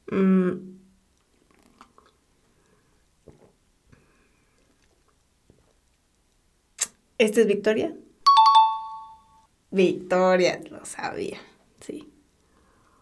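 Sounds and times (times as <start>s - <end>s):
lip smacks and mouth clicks: 1.1s - 2.8s, 4.6s - 7.0s.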